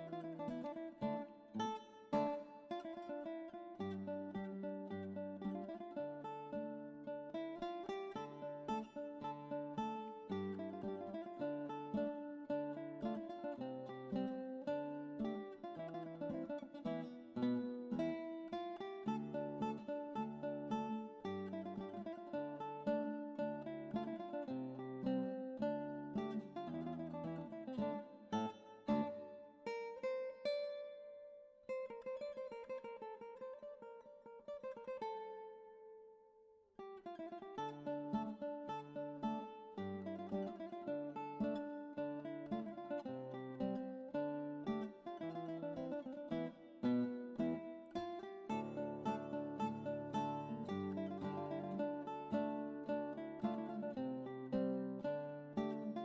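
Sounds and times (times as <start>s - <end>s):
plucked string early music: 0.0s - 56.0s.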